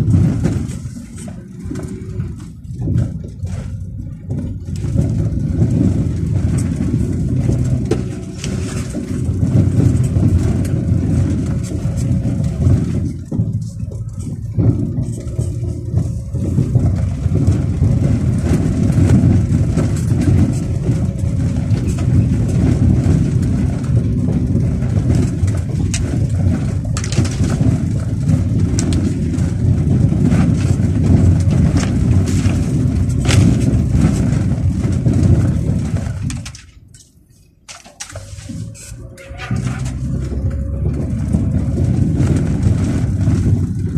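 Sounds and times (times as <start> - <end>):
car engine and tyre rumble: 0.0 - 43.9
knocks and rattles from bumps: 0.0 - 43.9.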